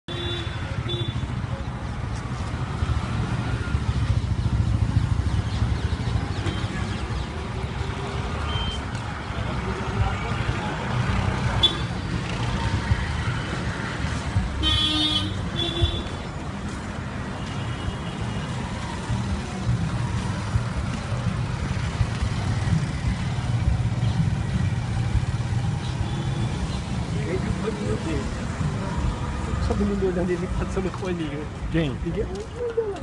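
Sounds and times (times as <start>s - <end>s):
vehicle horns honking: 0.1s - 1.2s, 8.4s - 8.9s, 11.6s - 11.9s, 14.6s - 16.2s.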